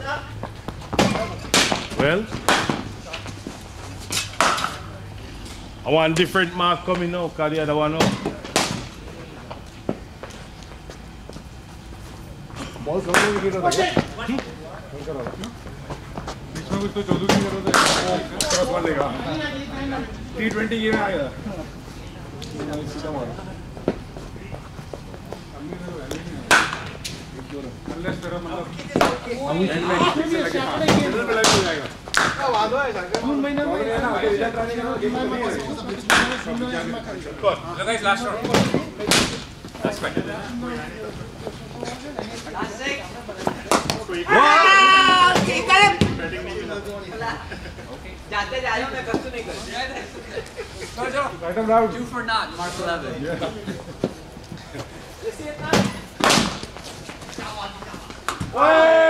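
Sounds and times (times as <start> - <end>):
sharp crack in echoing hall: 8.0 - 9.0, 38.5 - 39.5, 56.2 - 56.7.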